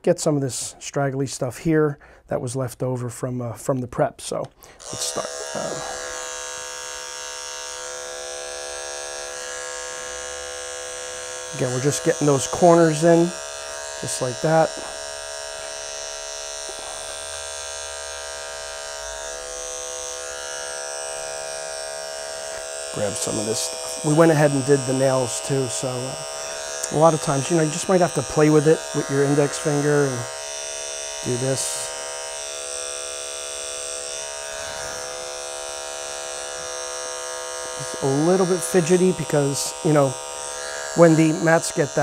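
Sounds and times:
electric clipper humming: 4.6s - 42.0s.

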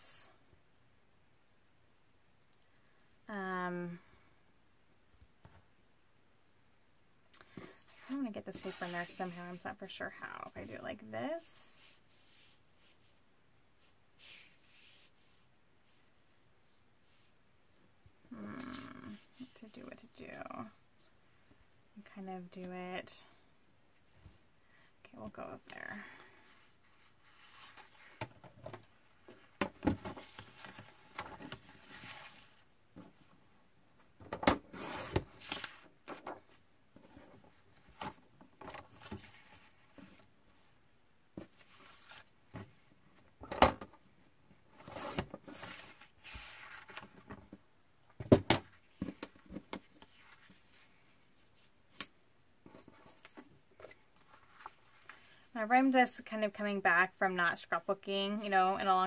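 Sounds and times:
paper shuffling on tabletop: 7.5s - 9.6s, 13.8s - 15.4s, 41.4s - 42.6s, 44.8s - 47.5s.

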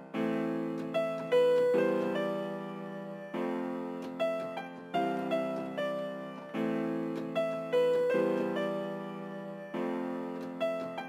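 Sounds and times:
software instrument melody: 0.0s - 11.0s.

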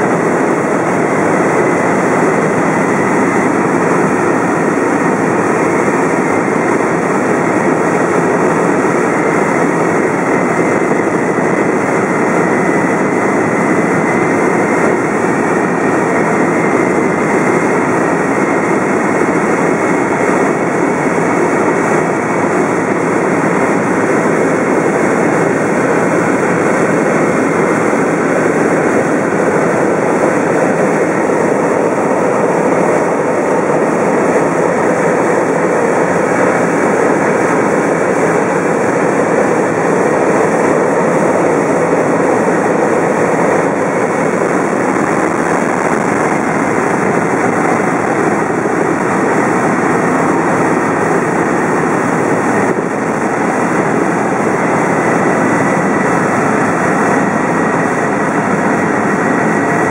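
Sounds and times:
faint steady whines: 0.0s - 59.9s
helicopter engine and rotor drone: 0.0s - 59.9s.

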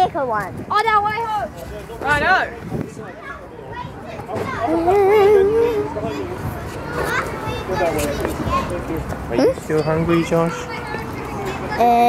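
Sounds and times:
background chatter: 0.0s - 12.0s
children's voices: 3.0s - 12.0s.

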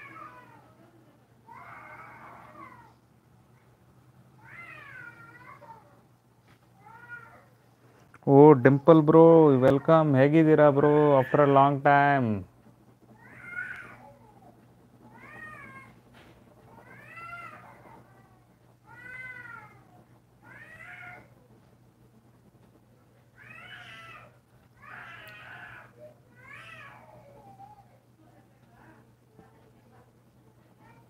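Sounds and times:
cat meowing: 15.1s - 15.9s, 18.9s - 21.3s, 23.4s - 27.2s.

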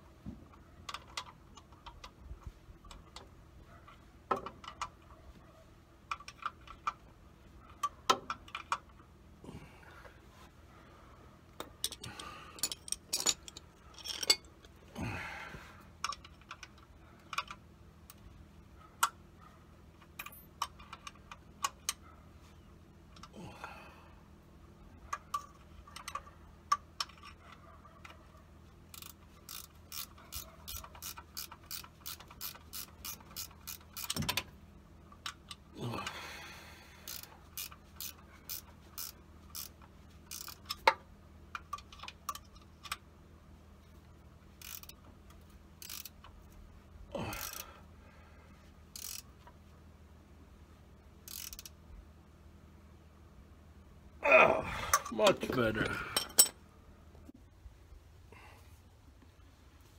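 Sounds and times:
ratchet wrench clicking: 28.9s - 34.4s, 37.0s - 41.0s, 44.6s - 45.0s, 45.8s - 46.4s, 47.2s - 47.7s, 48.9s - 49.3s, 51.2s - 51.8s.

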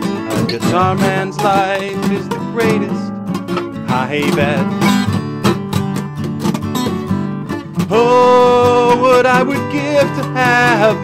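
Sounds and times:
acoustic guitars strumming chords: 0.0s - 11.0s.

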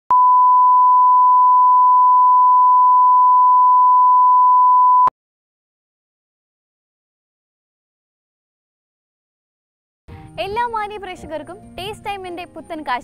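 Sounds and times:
steady pure test tone: 0.1s - 5.1s.

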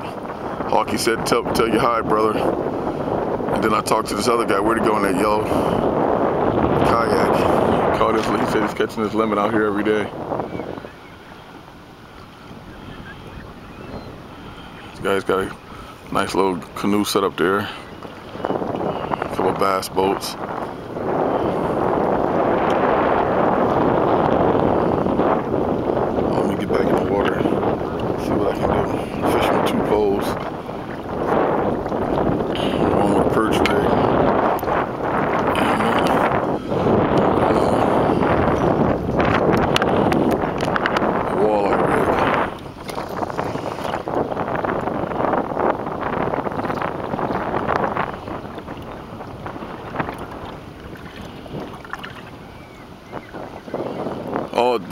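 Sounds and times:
wind buffeting microphone: 0.0s - 54.9s
small waves splashing: 4.2s - 54.9s.

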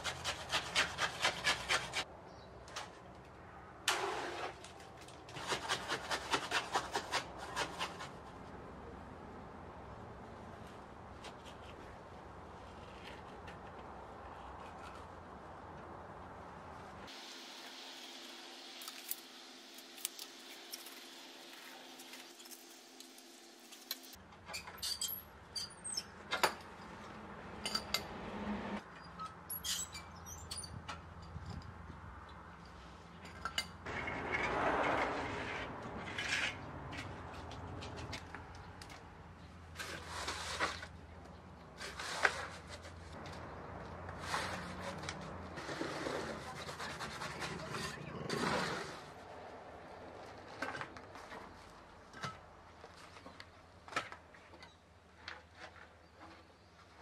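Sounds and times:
shovelling gravel in plastic tub: 3.9s - 8.1s, 39.8s - 41.0s, 44.2s - 49.1s.

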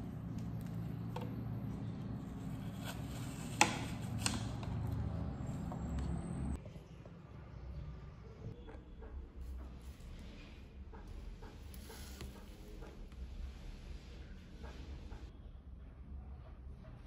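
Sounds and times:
low room hum: 0.0s - 17.0s.

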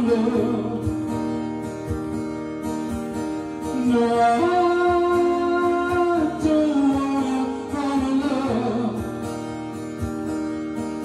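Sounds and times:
man singing: 0.0s - 0.9s, 3.7s - 9.0s
strummed acoustic guitar: 0.0s - 11.0s.

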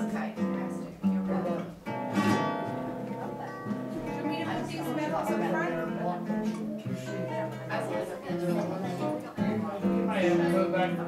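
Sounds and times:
acoustic guitar playing: 0.0s - 11.0s.

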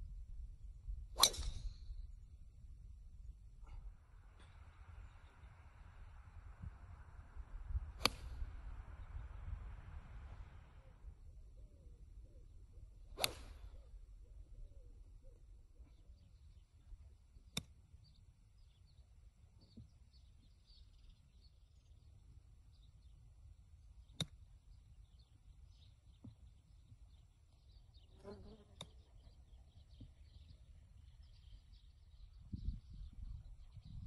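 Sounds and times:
club striking ball and sand: 1.2s - 1.7s, 7.7s - 9.4s, 13.2s - 13.7s
golf club swish: 1.2s - 1.7s, 7.6s - 10.6s, 13.1s - 13.8s.

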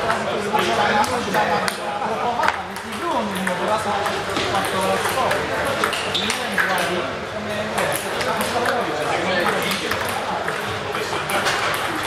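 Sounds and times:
table tennis balls clicking: 0.0s - 7.0s, 7.7s - 12.0s.

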